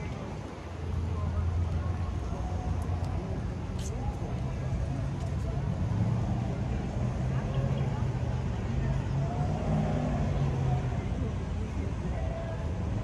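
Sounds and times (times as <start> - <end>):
people talking: 0.0 - 13.0
traffic rumble: 0.0 - 13.0.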